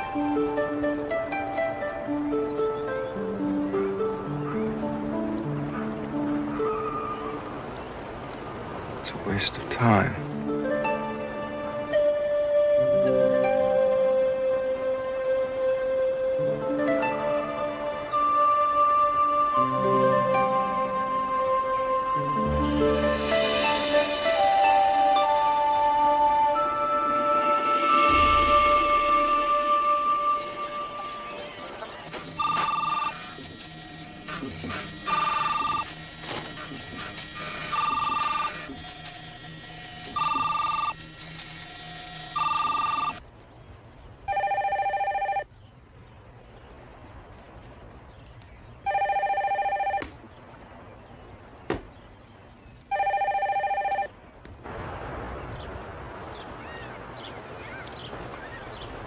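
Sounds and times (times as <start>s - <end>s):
steady hiss: 0.0s - 44.3s
telephone ringing: 32.4s - 33.4s, 35.0s - 35.9s, 37.4s - 38.8s, 40.1s - 41.0s, 42.4s - 43.2s, 44.3s - 45.5s, 48.9s - 50.1s, 52.9s - 54.1s.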